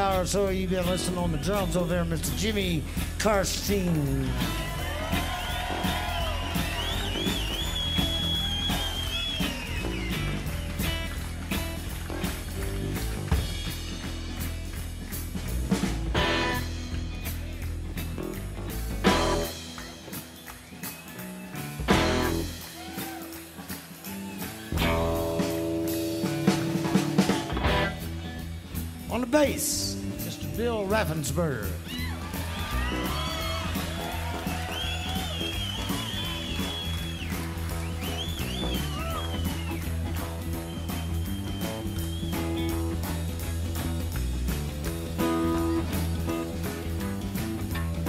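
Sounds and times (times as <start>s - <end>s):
blues-rock band playing: 0.0s - 48.0s.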